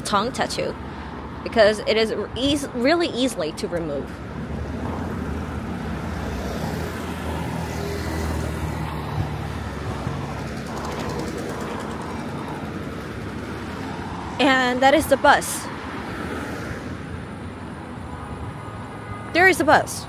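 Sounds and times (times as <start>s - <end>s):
car and motorbike engines passing: 0.0s - 20.0s.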